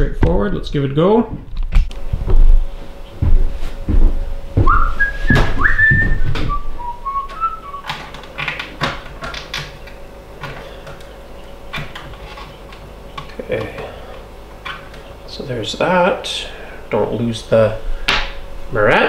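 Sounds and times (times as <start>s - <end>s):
person whistling a tune: 4.6s - 7.9s.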